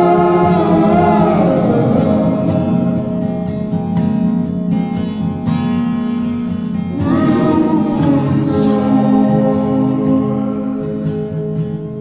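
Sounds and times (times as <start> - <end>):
reverb-heavy acoustic guitar strums: 0.0 - 12.0.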